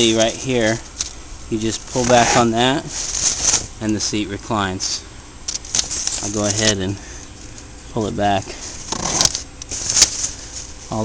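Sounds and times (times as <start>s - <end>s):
strap scraping: 0.0s - 4.1s, 5.5s - 6.9s, 8.6s - 11.0s.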